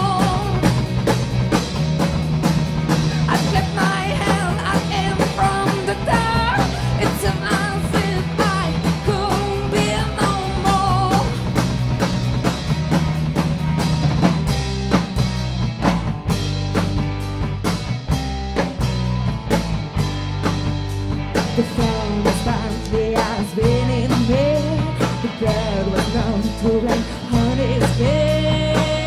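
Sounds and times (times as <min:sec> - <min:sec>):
woman singing: 0:00.0 - 0:00.8, 0:03.3 - 0:11.4, 0:21.5 - 0:29.0
rock band playing: 0:00.0 - 0:29.0
steady drum beat: 0:00.0 - 0:29.0.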